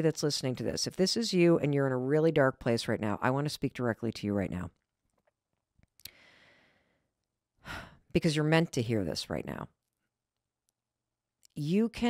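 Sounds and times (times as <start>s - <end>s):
woman breathing in: 6.1s - 8.0s.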